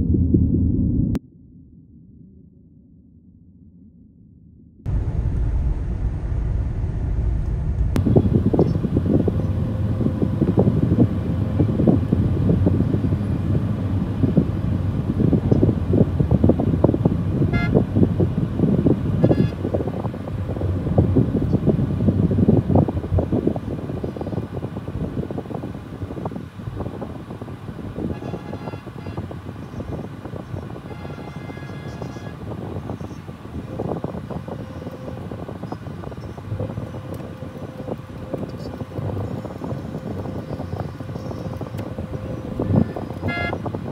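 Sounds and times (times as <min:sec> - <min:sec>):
traffic rumble: 0:04.9 - 0:43.9
vehicle horns honking: 0:17.5 - 0:17.9, 0:19.2 - 0:19.8, 0:28.0 - 0:32.7, 0:41.2 - 0:43.8.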